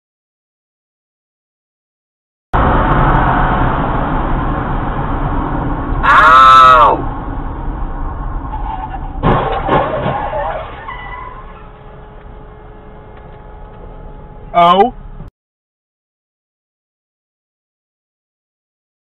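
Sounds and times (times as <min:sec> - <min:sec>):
car road and engine noise: 0:02.6 - 0:15.3
person crying out: 0:06.0 - 0:07.0.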